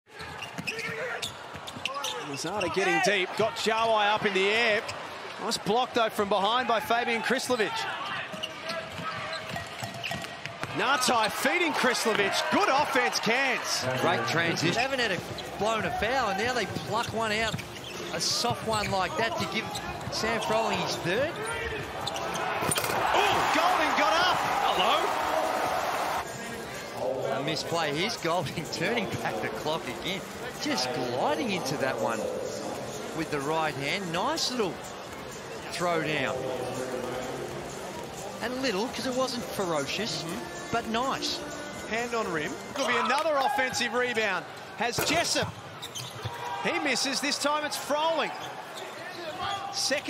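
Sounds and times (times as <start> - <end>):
arena crowd cheering: 0.1 - 9.4, 10.4 - 14.9, 20.1 - 26.3, 42.8 - 45.4, 46.3 - 50.0.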